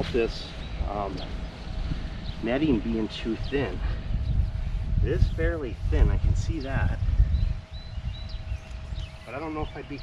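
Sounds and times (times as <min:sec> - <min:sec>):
wind buffeting microphone: 0:00.0 - 0:10.0
faint bird chirps: 0:06.6 - 0:10.0.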